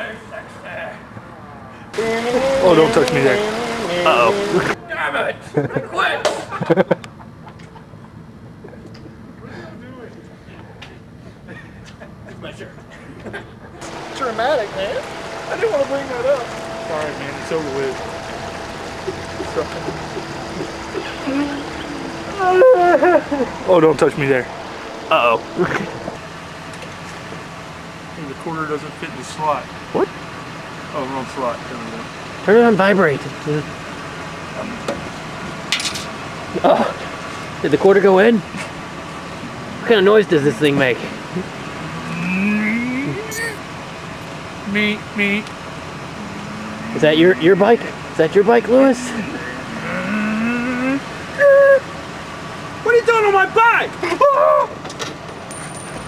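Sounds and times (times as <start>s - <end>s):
machine whine rising in pitch: 13.8s - 27.5s, 46.1s - 50.9s
steady hiss: 13.8s - 29.7s
person making wavering sung sounds: 16.7s - 23.8s, 41.8s - 43.6s, 46.2s - 47.9s, 48.8s - 51.9s.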